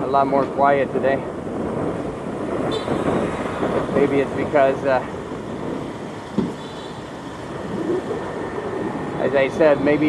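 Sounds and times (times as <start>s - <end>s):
street traffic: 0.0s - 10.0s
wind rushing over microphone: 0.0s - 10.0s.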